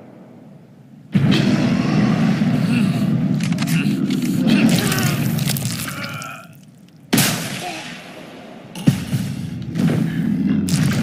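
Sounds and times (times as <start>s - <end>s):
rifle gunshot: 7.1s - 8.2s.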